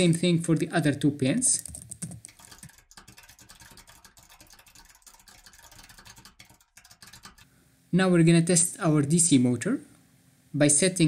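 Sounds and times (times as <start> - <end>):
typing on computer keyboard: 1.6 - 7.5.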